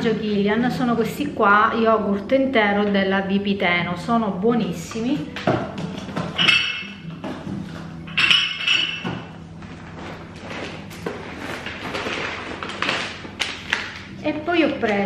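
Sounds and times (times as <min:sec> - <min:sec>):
shopping bag rustling: 0:09.4 - 0:14.7.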